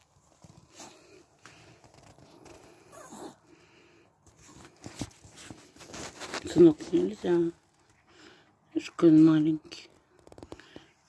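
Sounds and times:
dog whining: 2.9 - 3.4.

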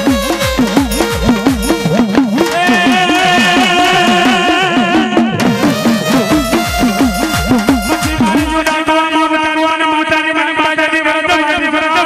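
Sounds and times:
hand drum beating: 0.0 - 8.9
person singing long note: 2.4 - 6.8.

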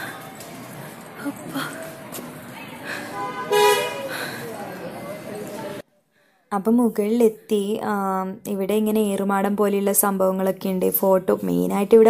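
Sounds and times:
background noise: 0.0 - 12.0
vehicle horn honk: 3.1 - 4.1.

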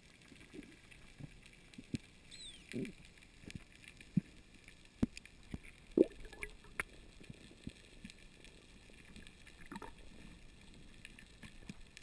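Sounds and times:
small clicks and crackle: 0.0 - 12.0.

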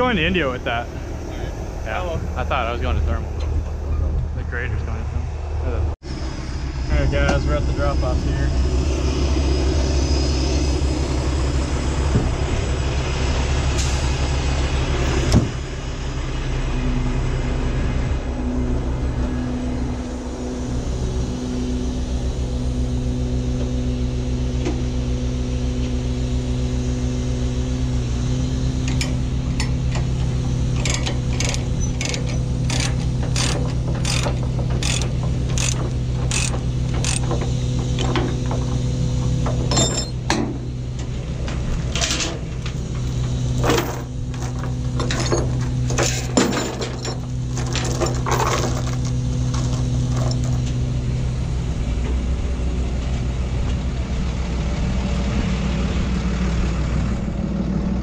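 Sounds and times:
diesel truck engine idling: 0.0 - 58.0
thump: 15.3 - 15.6
ratchet chain binder clicking: 30.8 - 38.2.

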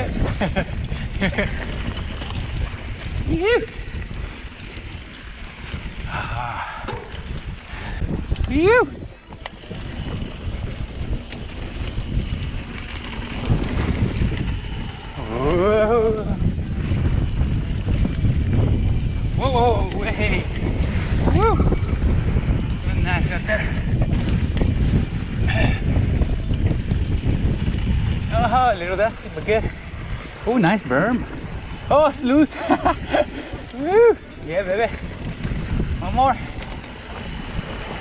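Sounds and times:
bike tyres rolling on dirt: 0.0 - 38.0
wind buffeting microphone: 0.0 - 38.0.

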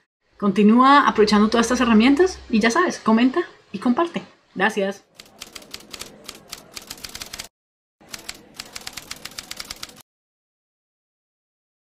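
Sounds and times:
rapid keyboard typing clicks: 5.2 - 7.5, 8.1 - 10.0.

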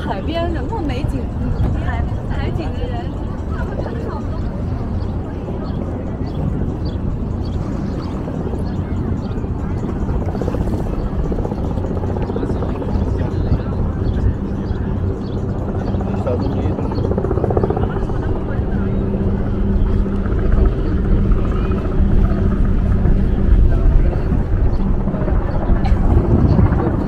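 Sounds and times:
engine drone: 0.0 - 27.0
low outdoor rumble: 0.0 - 27.0
people talking nearby: 0.0 - 27.0.

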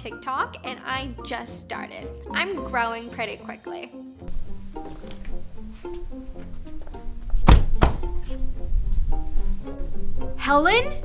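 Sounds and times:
background music: 0.0 - 11.0
car doors shutting: 7.4 - 8.1.

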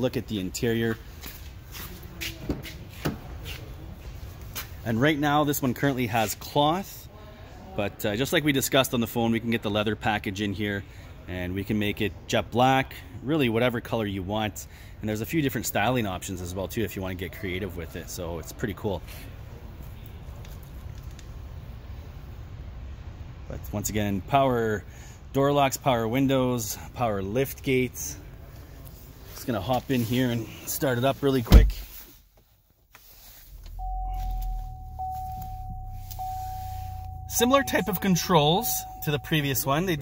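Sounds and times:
footsteps and shuffling: 0.9 - 4.8, 31.6 - 39.0
low room rumble: 33.2 - 40.0.

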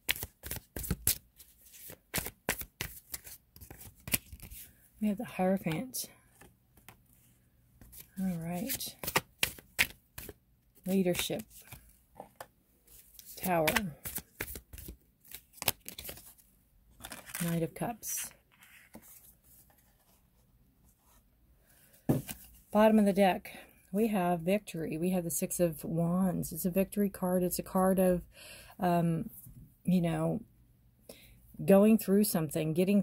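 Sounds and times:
cards being shuffled: 0.0 - 4.8, 7.8 - 16.4, 17.0 - 20.1.

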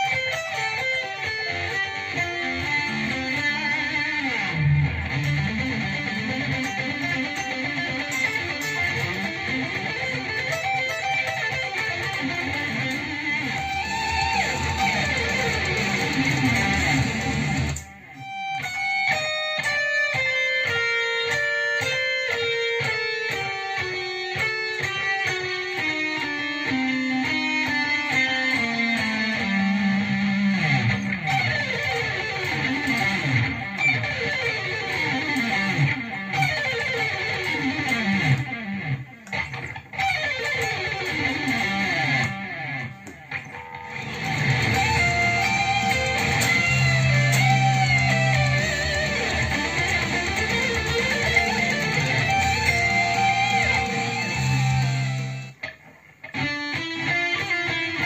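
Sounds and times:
electric guitar solo: 0.0 - 58.0.

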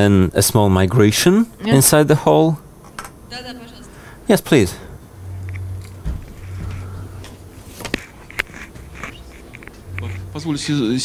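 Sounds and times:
low hum over pa: 3.3 - 11.0
microphone handling bump: 5.9 - 7.9.

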